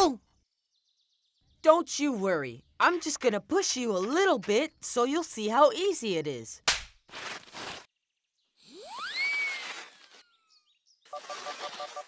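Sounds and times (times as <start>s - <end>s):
whoosh with rising whistle: 8.7s - 10.1s.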